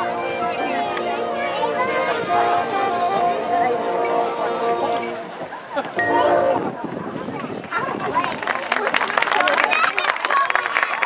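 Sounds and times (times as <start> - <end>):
marching band chord: 0.0 - 5.4, 6.0 - 6.9
crowd clapping: 7.5 - 11.0.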